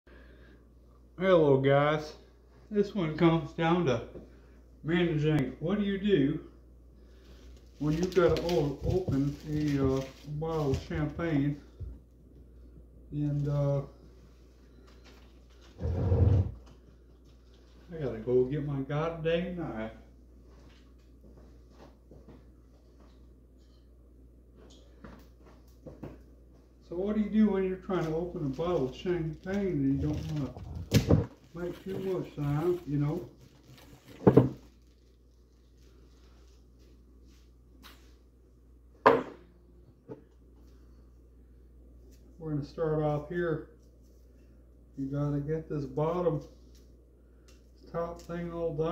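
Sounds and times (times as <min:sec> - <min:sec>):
low room hum: 0:00.1 - 0:48.9
man talking: 0:01.2 - 0:04.2, 0:04.8 - 0:06.5, 0:07.8 - 0:11.7, 0:13.1 - 0:14.0, 0:17.9 - 0:20.1, 0:26.8 - 0:30.9, 0:31.5 - 0:33.4, 0:42.4 - 0:43.7, 0:45.0 - 0:46.5, 0:47.8 - 0:48.9.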